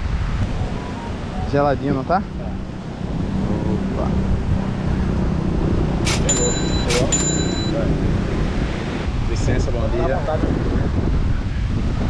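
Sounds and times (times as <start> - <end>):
sharp ringing strikes: 6.1 - 7.8
wind buffeting microphone: 7.9 - 12.0.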